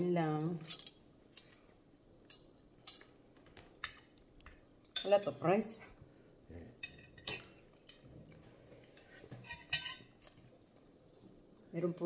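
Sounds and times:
cutlery clinking on ceramic plate: 0:06.8 - 0:08.0, 0:09.3 - 0:10.4.

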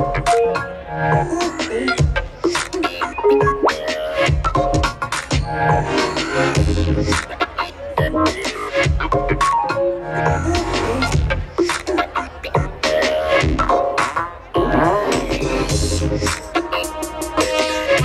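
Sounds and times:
glitch hop music: 0:00.0 - 0:18.0.

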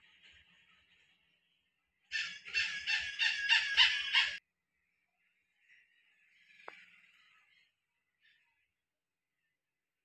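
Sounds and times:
bird calling rapid notes: 0:02.1 - 0:04.4.

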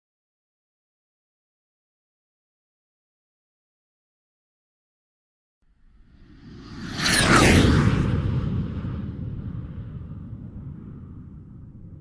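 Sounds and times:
cinematic whoosh and boom: 0:05.9 - 0:12.0.

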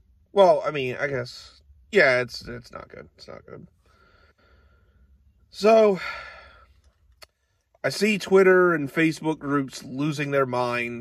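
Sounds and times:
man speaking: 0:00.3 - 0:03.8, 0:05.5 - 0:06.3, 0:07.8 - 0:11.0
man sighing: 0:05.9 - 0:06.8.

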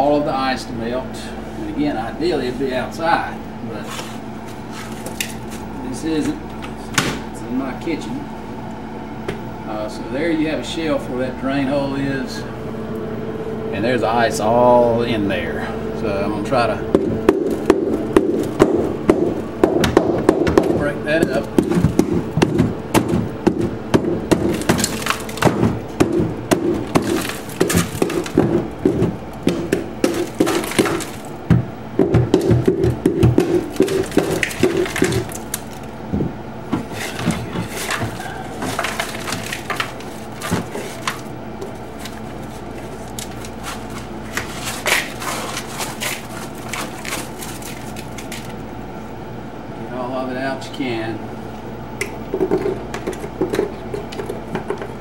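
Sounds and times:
hand tool chipping ice: 0:20.5 - 0:31.2, 0:32.2 - 0:35.7, 0:43.1 - 0:48.5.

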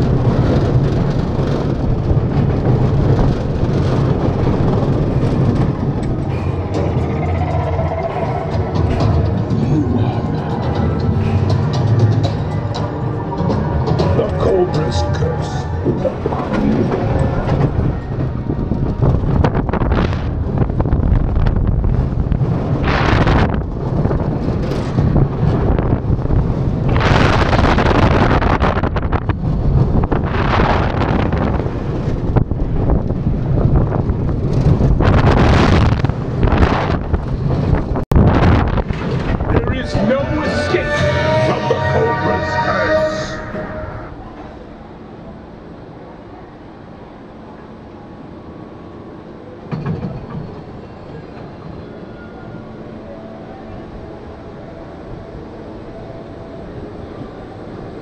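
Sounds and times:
wind buffeting microphone: 0:00.0 - 0:14.3, 0:15.7 - 0:41.4
wheels rumbling on steel track: 0:00.0 - 0:58.0
steady pitched tones: 0:04.2 - 0:18.7, 0:39.3 - 0:44.9.

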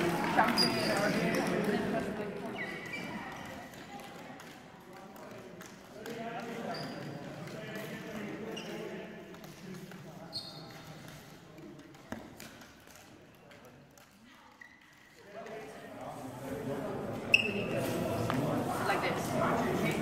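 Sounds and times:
background voices in hall: 0:00.0 - 0:20.0.

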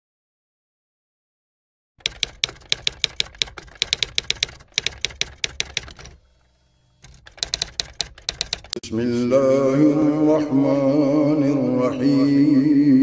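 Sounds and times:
typewriter key clicks: 0:02.0 - 0:06.2, 0:07.0 - 0:08.8.

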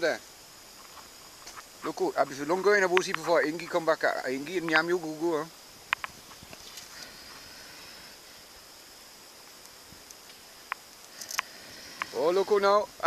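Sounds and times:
high-pitched insect drone: 0:00.0 - 0:13.0.

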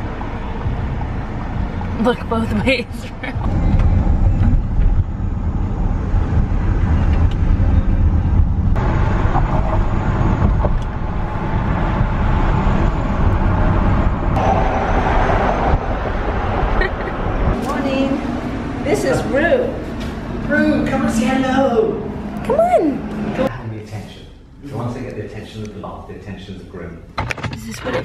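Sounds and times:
road rumble: 0:00.0 - 0:28.0
wind rushing through car window: 0:03.2 - 0:18.7.

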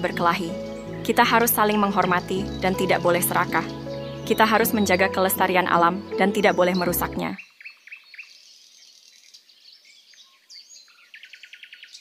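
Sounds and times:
bird trill: 0:00.0 - 0:12.0
birds chirping: 0:00.0 - 0:12.0.

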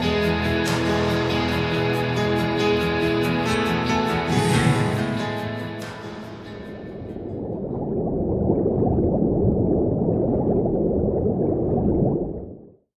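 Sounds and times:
muffled underwater bubbling: 0:06.5 - 0:12.8.

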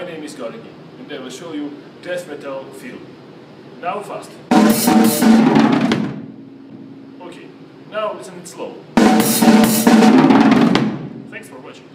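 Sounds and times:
fast drum fill: 0:04.5 - 0:06.4, 0:09.0 - 0:11.4
drums and cymbals ringing: 0:04.5 - 0:07.2, 0:09.0 - 0:11.4.

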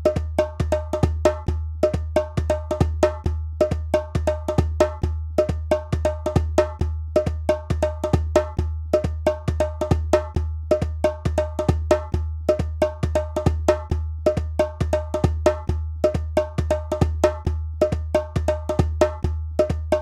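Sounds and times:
deep low drum beat: 0:00.0 - 0:20.0.

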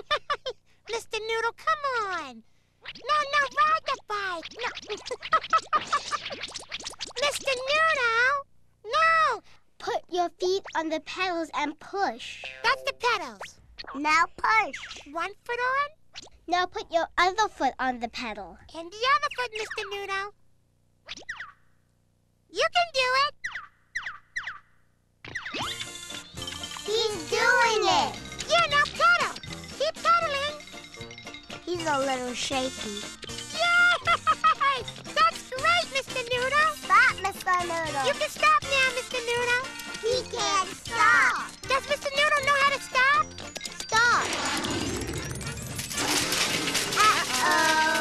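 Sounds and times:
bouncy children's comedy music: 0:12.2 - 0:15.2, 0:25.3 - 0:48.0
bicycle crashing with metallic clatter: 0:44.3 - 0:48.0.

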